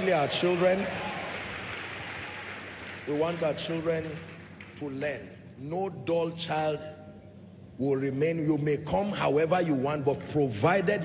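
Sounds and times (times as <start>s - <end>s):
rushing background noise in hall: 0.0s - 11.0s.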